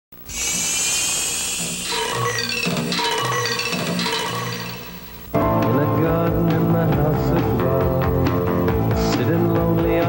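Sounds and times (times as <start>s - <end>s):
high buzzing hiss: 0.2s - 5.4s
low electronic hum: 0.2s - 7.1s.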